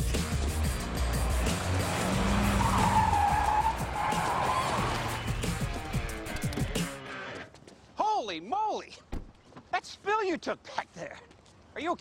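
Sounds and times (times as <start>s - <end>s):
soundtrack music: 0.0s - 7.3s
car tyres squealing: 0.2s - 7.4s.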